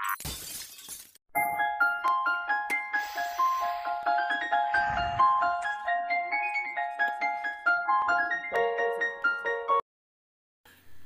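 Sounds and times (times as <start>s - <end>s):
glass shattering crash: 0.0s - 1.2s
bright keyboard tune: 1.4s - 9.8s.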